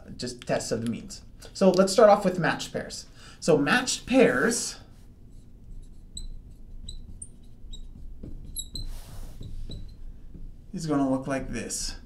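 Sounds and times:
marker squeaking on glass: 5.3s - 10.1s.

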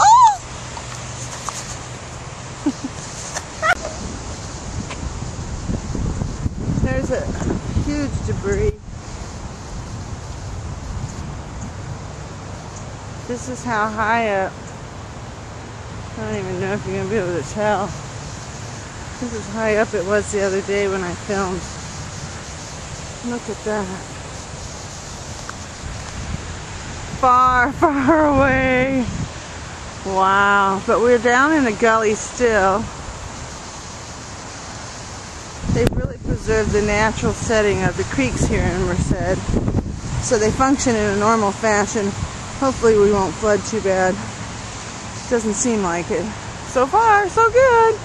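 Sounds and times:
muffled wind rumble on microphone: 2.6s - 15.1s, 15.9s - 33.5s, 35.4s - 48.0s.

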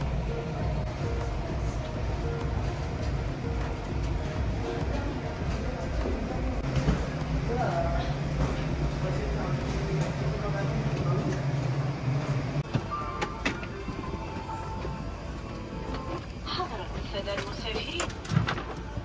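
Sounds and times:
music: 0.0s - 9.2s, 12.6s - 19.0s.

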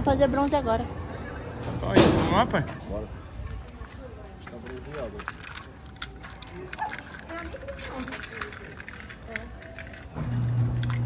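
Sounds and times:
faint indistinct voices: 0.0s - 11.0s
low street background noise: 0.0s - 11.0s
footsteps on pavement: 2.7s - 8.6s.

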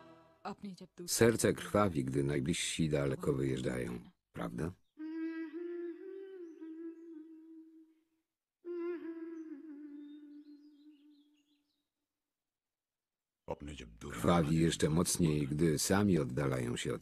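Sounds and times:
person humming: 5.0s - 11.3s.

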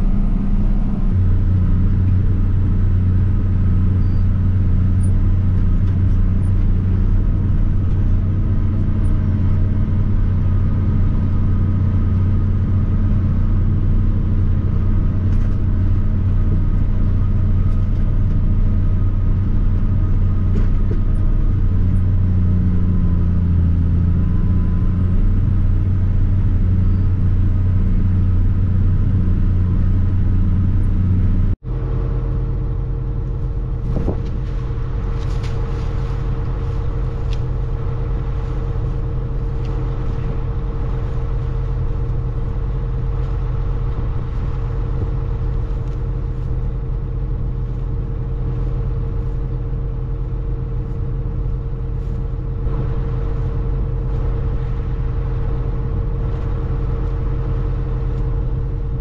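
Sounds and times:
tractor diesel engine under load: 0.0s - 59.0s
tractor idling: 0.0s - 59.0s.

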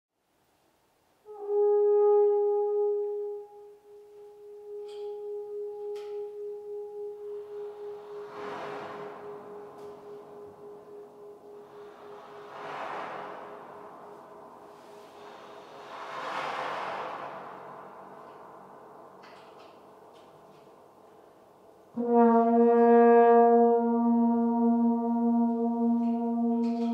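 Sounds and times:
french horn holding a note: 1.3s - 15.5s, 22.0s - 26.9s
pulsing echo: 3.6s - 26.9s
rushing breath-like swells: 7.3s - 19.2s.

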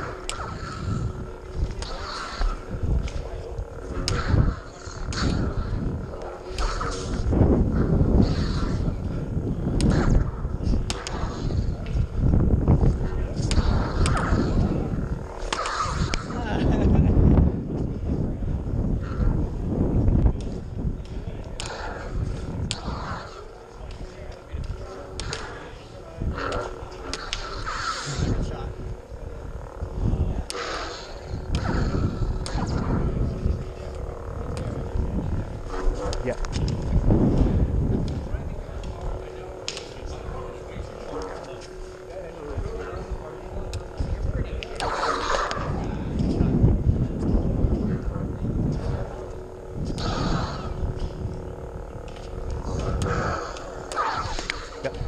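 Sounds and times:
lightsaber blades swinging: 0.0s - 55.0s
low rumble of movement: 0.0s - 55.0s.

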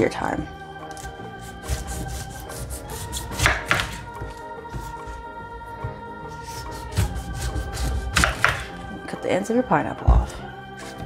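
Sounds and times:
knife sawing through pineapple rind: 0.9s - 5.2s, 6.3s - 8.8s.

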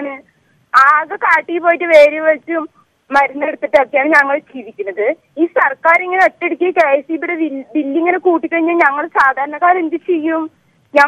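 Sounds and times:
woman speaking over telephone: 0.0s - 0.2s, 0.8s - 11.0s.

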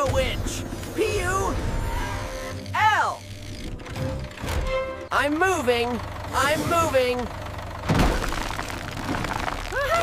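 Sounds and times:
background music: 0.0s - 5.5s.

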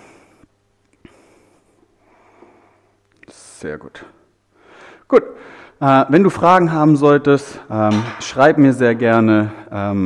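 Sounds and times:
person breathing: 0.0s - 3.1s, 4.2s - 5.8s.

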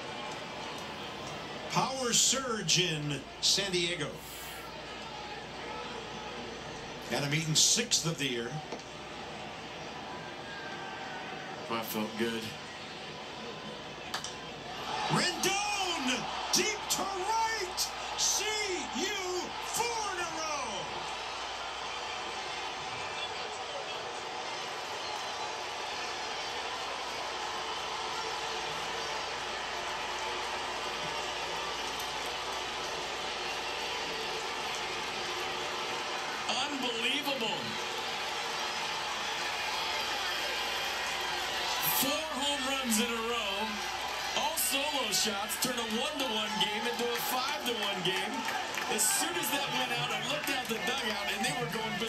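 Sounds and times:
crowd noise through tv speaker: 0.0s - 52.0s.

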